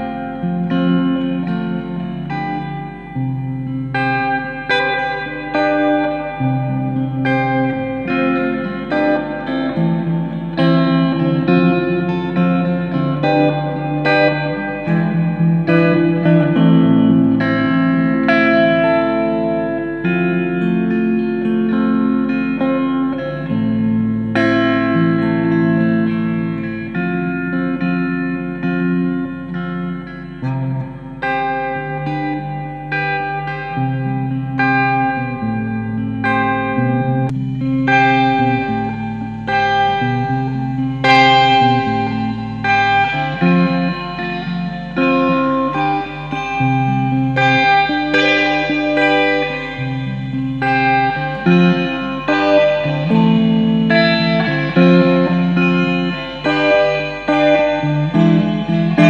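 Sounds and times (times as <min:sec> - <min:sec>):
reverb electric guitar arpeggios: 0:00.0 - 0:59.0.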